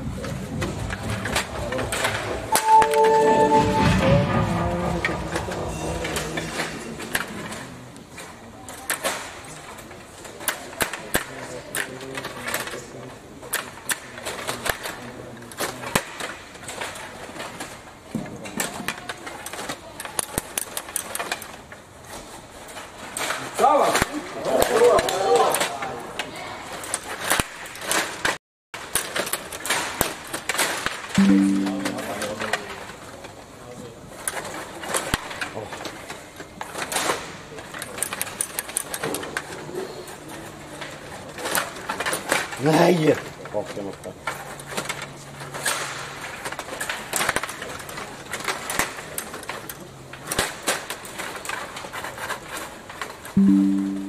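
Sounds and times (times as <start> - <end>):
short low steady tone: 2.6 - 4.5, 31.2 - 32.4, 53.4 - 54.0
table hockey clicks and knocks: 6.1 - 12.8, 44.3 - 54.0.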